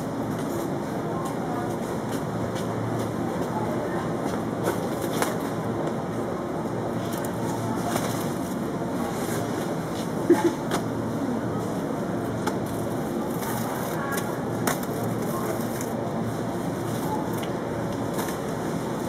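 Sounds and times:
refrigerated shelves hum: 0.0s - 19.0s.

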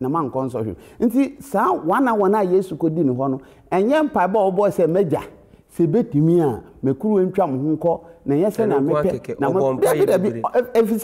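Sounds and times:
man speaking animatedly: 0.0s - 11.0s.

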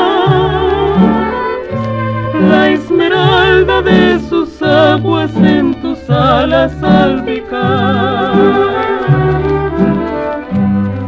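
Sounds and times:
band playing strings and bass: 0.0s - 11.0s.

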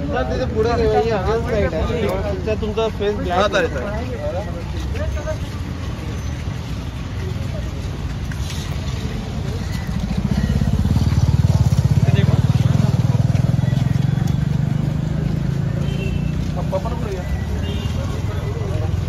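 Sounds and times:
street noise: 0.0s - 19.0s
vehicle engine running: 7.7s - 19.0s.

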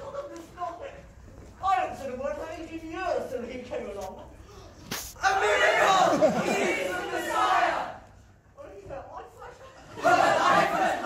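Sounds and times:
many voices clamouring: 10.0s - 11.0s.

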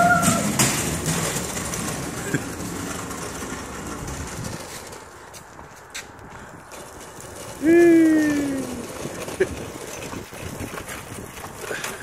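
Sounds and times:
hand truck wheels rolling on concrete: 0.0s - 12.0s.

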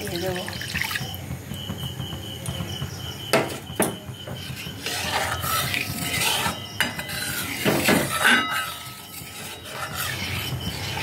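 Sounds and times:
spatula knocking on pan: 1.4s - 8.5s
spatula stirring in metal pan: 4.2s - 11.0s.

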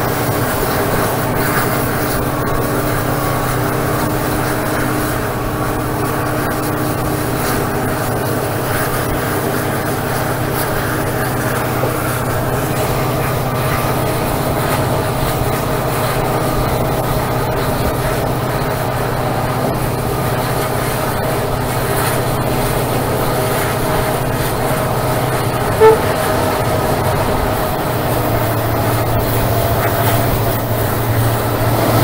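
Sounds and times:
diesel locomotive engine under load: 0.0s - 32.0s
train wheels on rails: 0.0s - 32.0s
train horn toot: 25.6s - 27.0s.

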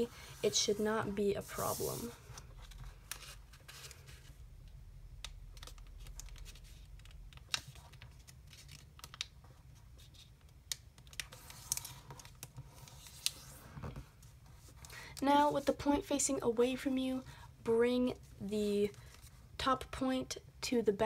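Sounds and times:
paper rustling as folded: 0.2s - 4.4s, 5.5s - 16.0s.

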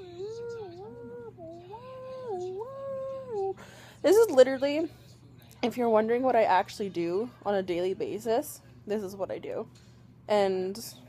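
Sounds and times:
woman humming a tune: 0.0s - 4.3s.

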